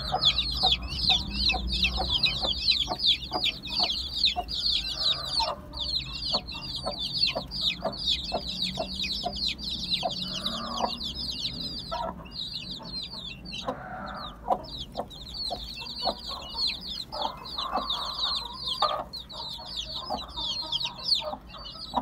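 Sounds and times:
chicks peeping: 0.0s - 22.0s
hen clucking: 0.0s - 22.0s.

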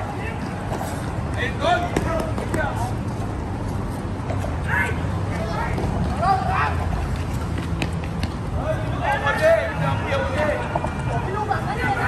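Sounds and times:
sneakers slapping on concrete: 1.8s - 2.8s, 7.0s - 8.6s.

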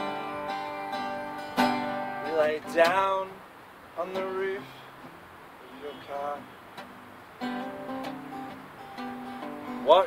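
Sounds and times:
acoustic guitar chords and notes: 0.0s - 10.0s.

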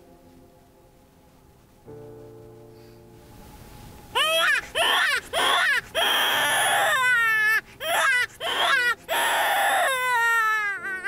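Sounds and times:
animal-like crying wails: 4.2s - 11.0s.

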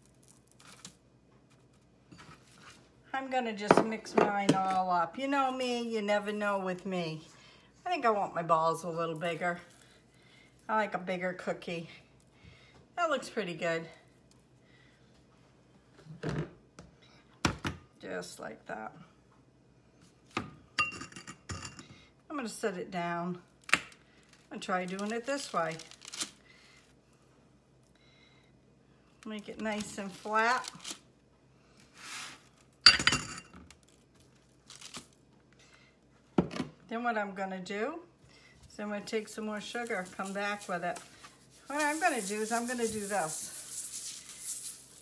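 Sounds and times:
soft rustles: 39.3s - 45.0s.

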